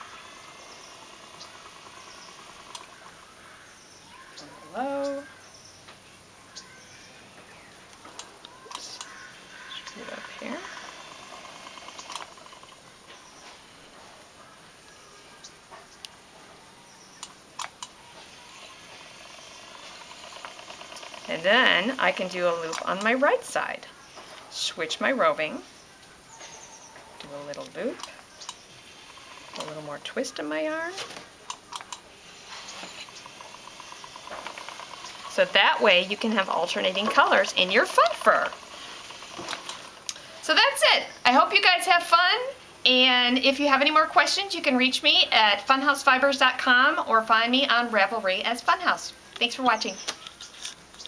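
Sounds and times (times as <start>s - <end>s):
electric spinning wheel ticking: 0.0s - 5.4s, 7.8s - 13.3s, 17.2s - 23.9s, 27.4s - 49.8s
faint steady hiss: 0.0s - 51.0s
spinning wheel clicks: 9.9s - 12.8s, 17.2s - 23.2s, 32.6s - 40.1s.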